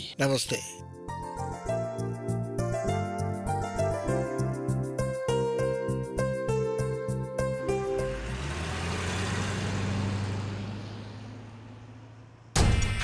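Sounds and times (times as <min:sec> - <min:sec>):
sudden loud hit: 0:12.5 - 0:13.0.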